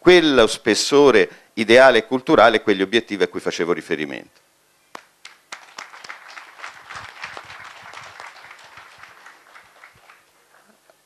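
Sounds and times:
audience applauding: 5.0 - 10.8.

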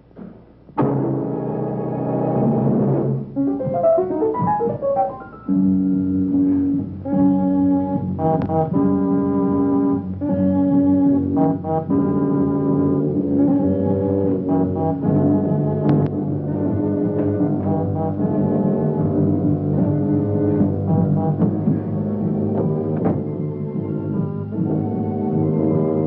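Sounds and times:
held brass chords: 0.8 - 25.0.

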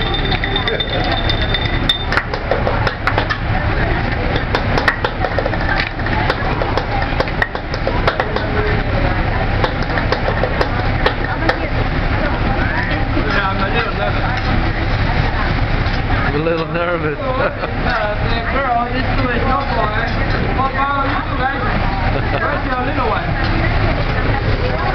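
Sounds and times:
restaurant chatter: 0.0 - 24.9.

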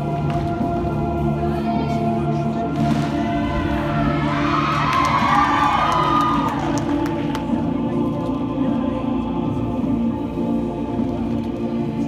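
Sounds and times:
recorded music: 0.0 - 12.0
audience cheering and whooping: 4.0 - 6.8.

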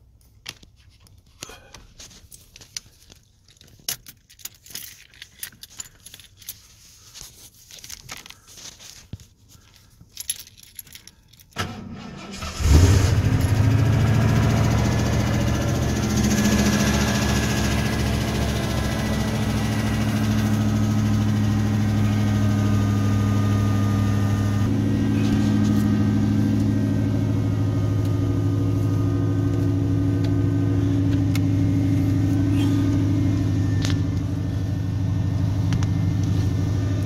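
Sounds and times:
keys jangling: 3.4 - 6.8, 9.6 - 11.6
pickup engine idling: 12.5 - 37.0.

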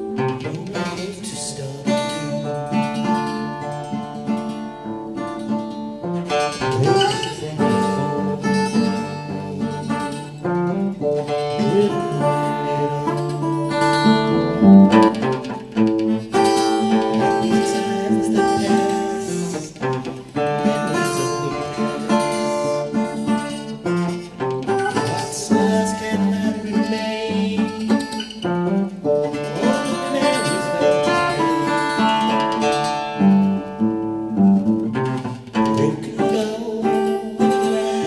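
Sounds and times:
acoustic guitar picked and strummed: 0.0 - 38.0.

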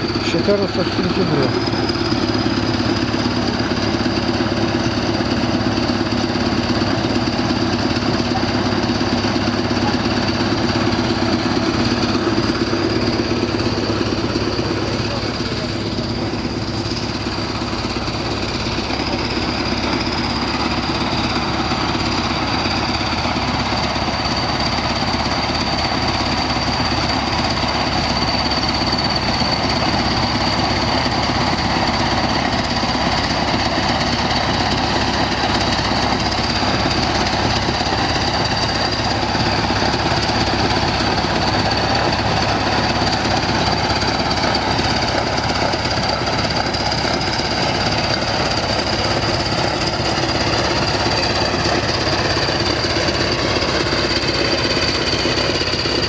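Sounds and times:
diesel bulldozer engine clattering: 0.0 - 56.0.

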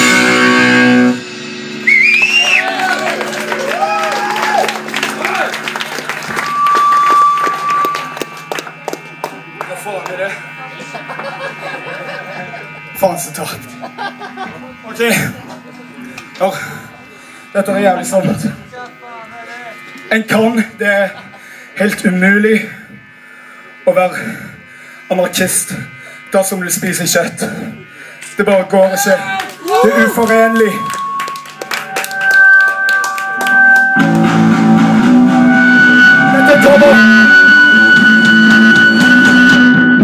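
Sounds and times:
rising high pitched tone: 0.0 - 9.7, 28.9 - 40.0
distorted electric guitar chord: 0.0 - 40.0
low amplifier hum: 0.0 - 40.0
man shouting into microphone: 28.9 - 30.8.

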